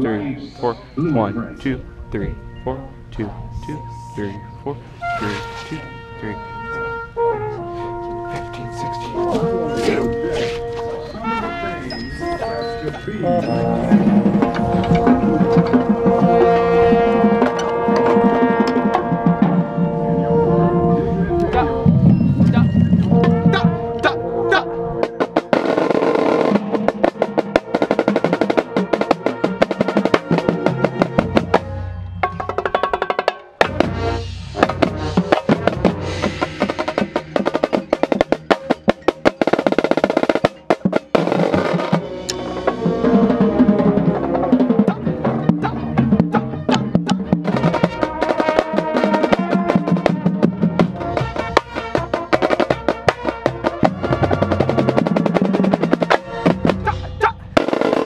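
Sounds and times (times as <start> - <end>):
marching band sustained chords: 0.0 - 58.0
bass drums: 25.0 - 58.0
snare drum strokes and rolls: 25.0 - 58.0.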